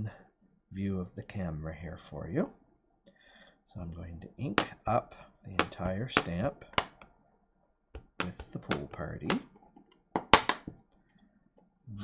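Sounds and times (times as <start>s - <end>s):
plastic taps and clicks: 5.6s - 7.1s, 8.0s - 10.8s.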